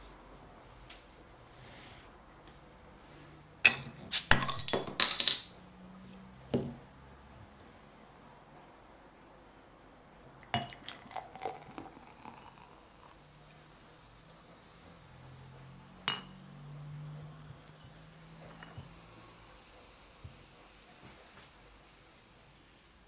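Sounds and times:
glass clinking: 0:03.6 - 0:05.6, 0:10.4 - 0:13.1, 0:16.0 - 0:16.6, 0:17.6 - 0:19.1
beer pouring into glass: 0:10.2 - 0:14.2.

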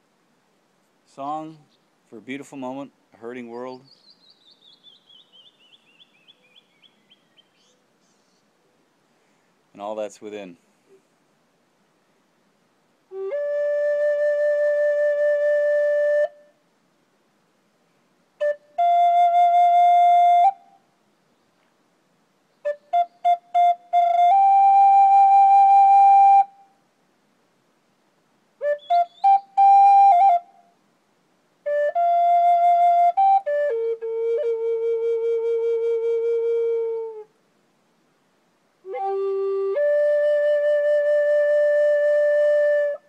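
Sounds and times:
flute playing slow melody: 0:13.1 - 0:16.6, 0:18.4 - 0:21.0, 0:22.6 - 0:26.8, 0:28.6 - 0:30.8, 0:31.6 - 0:37.4, 0:38.8 - 0:43.0.

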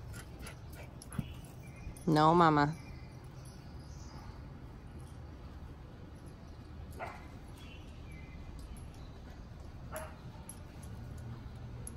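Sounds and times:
dog barking: 0:07.0 - 0:07.3, 0:09.9 - 0:10.2.

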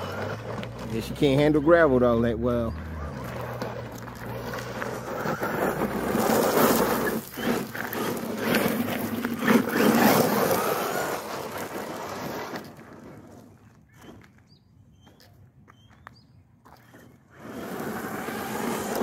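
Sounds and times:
tyres crunching on gravel: 0:00.0 - 0:14.5, 0:15.1 - 0:19.0
electric motor whining: 0:02.8 - 0:12.7, 0:17.3 - 0:19.0.

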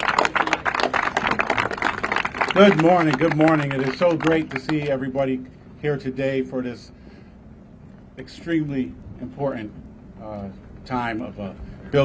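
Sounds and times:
small crowd applauding: 0:00.0 - 0:05.2.

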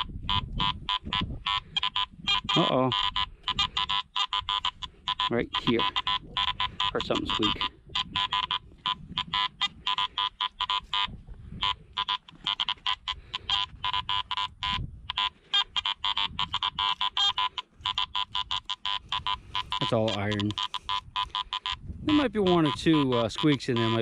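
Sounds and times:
metal detector chattering tones: 0:00.0 - 0:24.0
metal detector squeaks: 0:00.0 - 0:24.0.

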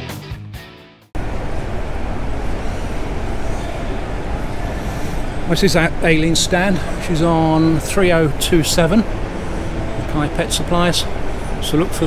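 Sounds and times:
exhibition hall rumble and hiss: 0:01.2 - 0:12.0.

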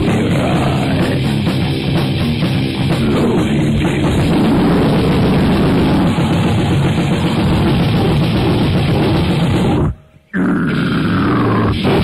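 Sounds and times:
guttural growled vocal: 0:00.0 - 0:01.4, 0:03.0 - 0:12.0
grindcore band playing: 0:00.0 - 0:12.0.

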